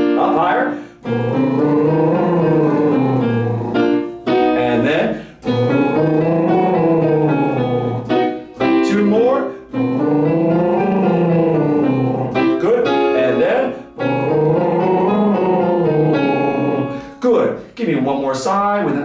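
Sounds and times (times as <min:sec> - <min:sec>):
piano notes: 0:00.0 - 0:17.2
man doing lip trills: 0:01.0 - 0:04.1, 0:05.2 - 0:08.5, 0:09.7 - 0:12.6, 0:14.0 - 0:17.1.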